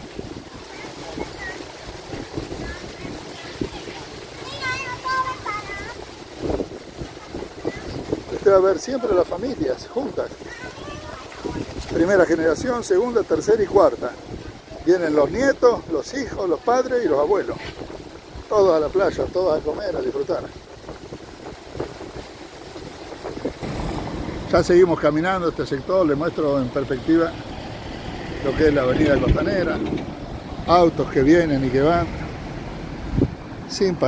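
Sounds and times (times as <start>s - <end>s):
road traffic rumble: 0.0s - 34.0s
wind buffeting microphone: 0.0s - 34.0s
crowd hum: 23.6s - 33.3s.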